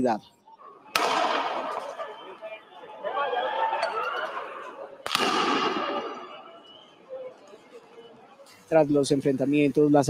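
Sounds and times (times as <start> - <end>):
sharp bang with long echo: 1.0 - 1.9, 5.1 - 6.3.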